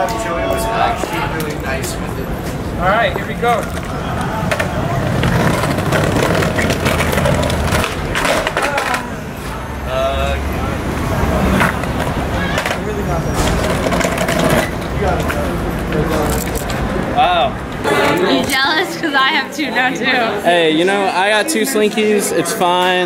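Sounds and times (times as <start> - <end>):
skateboard wheels rolling on bricks: 1.0 - 9.2, 11.5 - 16.9
skateboard clacks: 3.5 - 9.2, 11.5 - 16.0.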